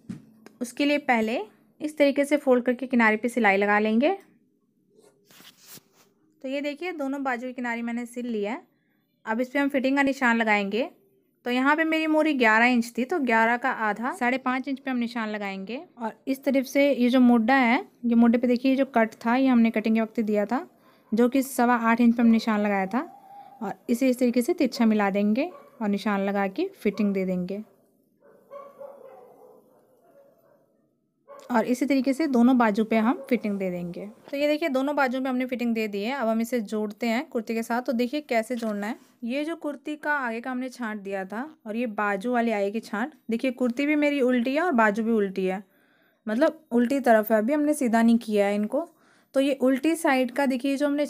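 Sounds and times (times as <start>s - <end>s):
cloth rustling: 5.0s - 6.2s
distant rooster crowing: 23.0s - 23.7s.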